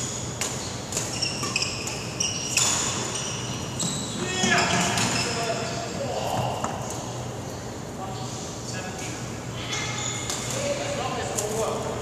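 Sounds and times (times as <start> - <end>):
shoes squeaking on wooden floor: 0.0 - 7.6.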